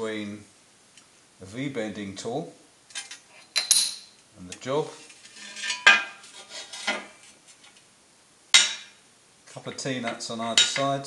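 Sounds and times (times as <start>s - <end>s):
metal clanks with ringing: 3.6s - 4.2s.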